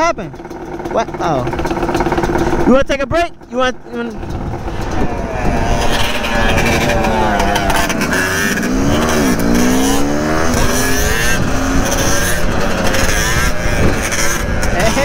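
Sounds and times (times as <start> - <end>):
dirt bike and atv engines revving: 0.0 - 15.0
wind noise on microphone: 4.0 - 15.0.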